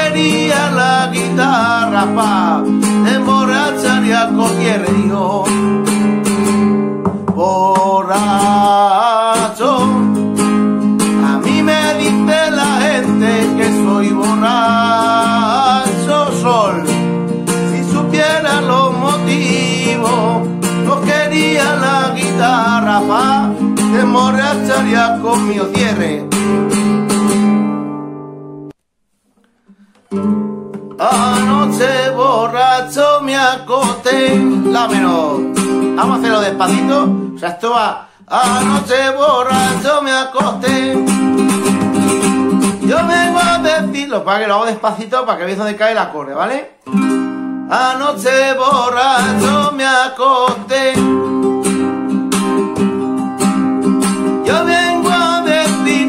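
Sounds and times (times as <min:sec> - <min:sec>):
man singing: 0:00.0 - 0:06.3, 0:07.1 - 0:26.6, 0:30.9 - 0:46.6, 0:47.7 - 0:56.0
nylon-string guitar strumming: 0:00.0 - 0:28.8, 0:29.4 - 0:44.7, 0:46.8 - 0:56.0.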